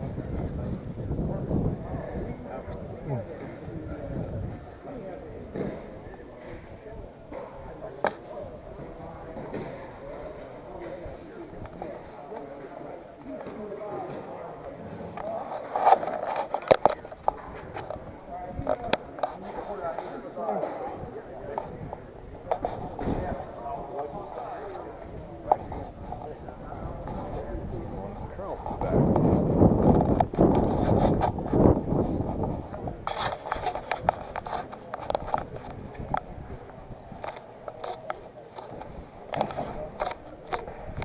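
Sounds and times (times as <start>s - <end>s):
people talking indistinctly: 0.0s - 41.0s.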